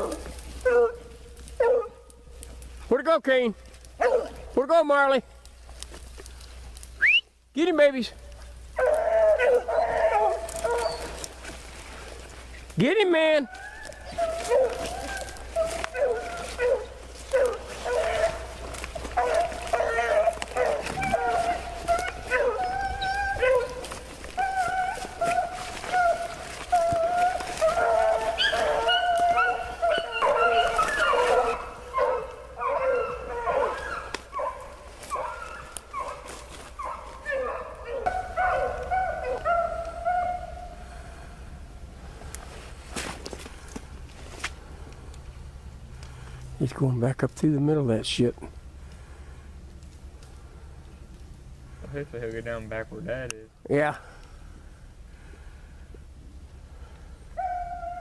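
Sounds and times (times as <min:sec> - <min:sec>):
hounds baying: 0:00.0 - 0:02.6, 0:03.9 - 0:04.6, 0:08.4 - 0:41.4, 0:56.9 - 0:58.0.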